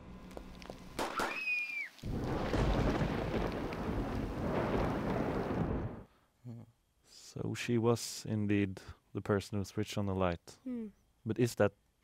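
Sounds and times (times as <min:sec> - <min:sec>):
rising and falling whistling tone: 0:01.2 - 0:02.0
loud thunder-like rumbling: 0:02.1 - 0:06.1.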